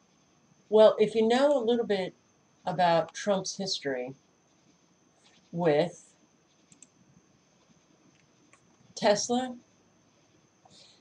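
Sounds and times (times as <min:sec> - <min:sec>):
faint steady high whine: 0:00.0 - 0:11.0
computer mouse clicks: 0:06.5 - 0:07.0.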